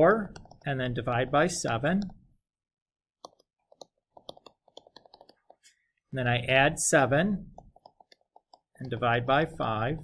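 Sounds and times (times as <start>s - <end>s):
stylus tapping on tablet screen: 3.2s - 5.9s, 7.5s - 9.3s.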